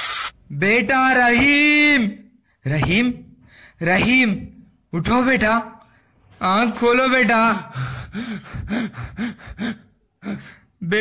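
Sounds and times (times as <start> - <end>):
person sobbing: 7.6 - 10.7.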